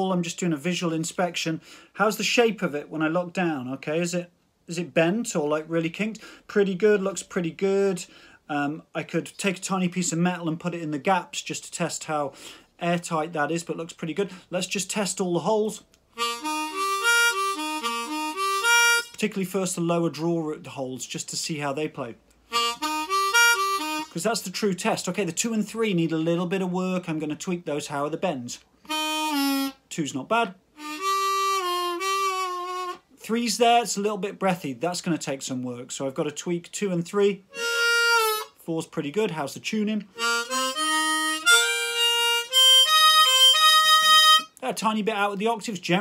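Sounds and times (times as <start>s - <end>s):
harmonica notes: 16.1s - 19.2s, 22.5s - 24.2s, 28.8s - 29.9s, 30.7s - 33.2s, 37.5s - 38.6s, 40.1s - 44.6s.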